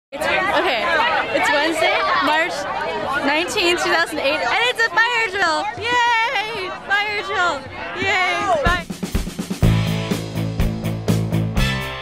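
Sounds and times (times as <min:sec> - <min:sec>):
voices talking over one another: 0:00.2 - 0:09.2.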